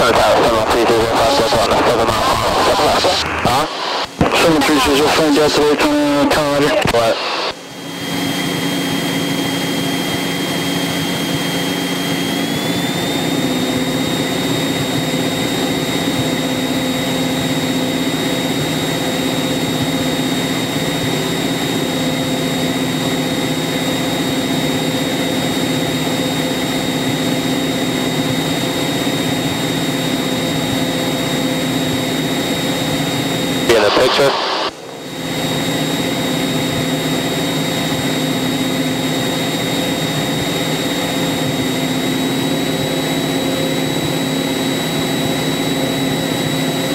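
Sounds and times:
thin high whine: 0.0 - 13.0, 32.2 - 37.6
light aircraft engine and propeller: 0.0 - 46.9.

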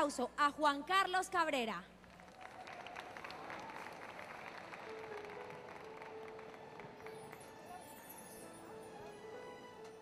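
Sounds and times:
audience applauding: 2.1 - 8.1.

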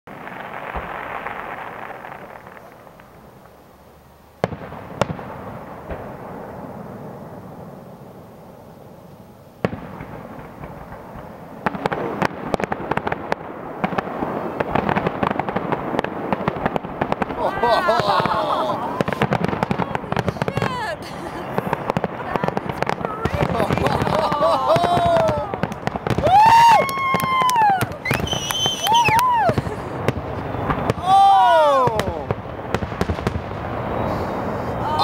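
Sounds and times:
fireworks bursting: 0.1 - 35.0.

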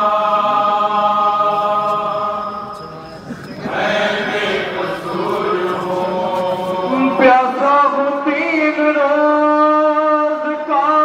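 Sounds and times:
men chanting a lament: 0.0 - 11.0.

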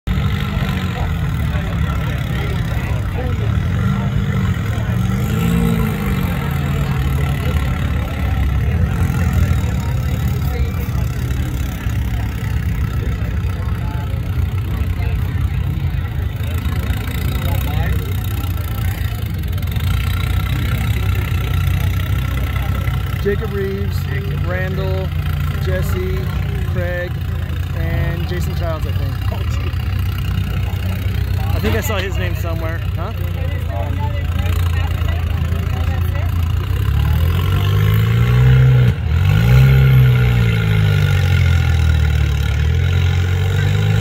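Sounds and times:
buggy engine idling and revving: 0.0 - 44.0
onlookers talking: 0.0 - 44.0.

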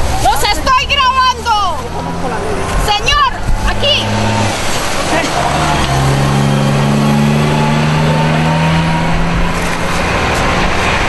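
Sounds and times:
outdoor noise: 0.0 - 11.0
vehicle engine running: 0.0 - 11.0.

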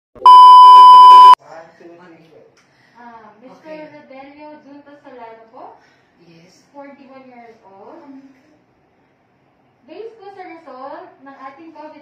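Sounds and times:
high-pitched test-tone beep: 0.2 - 1.4.

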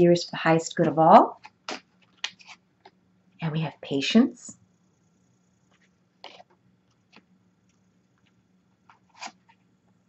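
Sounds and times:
paper cards rustling: 1.4 - 2.6, 8.9 - 9.6.

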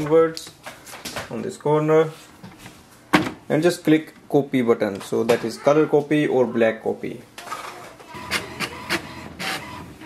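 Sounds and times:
printer mechanism whirring: 8.1 - 10.0.

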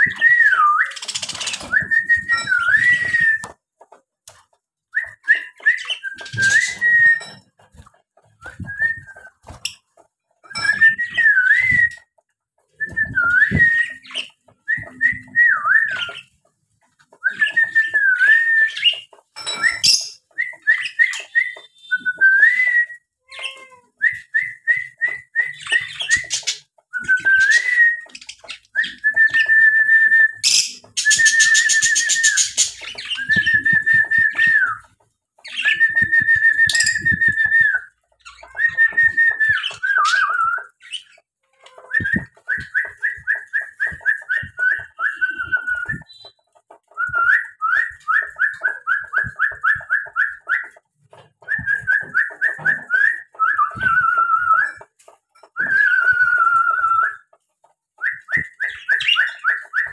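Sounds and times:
parrots whistling: 5.0 - 7.4, 17.2 - 41.2.

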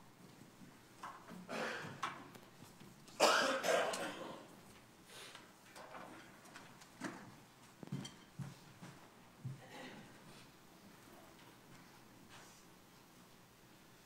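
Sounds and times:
person coughing: 1.5 - 2.0, 3.2 - 4.5.

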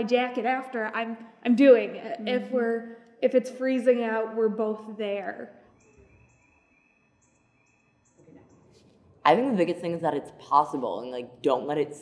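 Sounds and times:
faint high-pitched chirping: 5.6 - 8.8.

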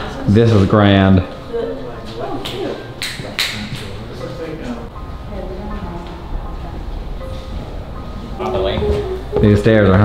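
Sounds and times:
footsteps on hardwood floor: 8.4 - 10.0.

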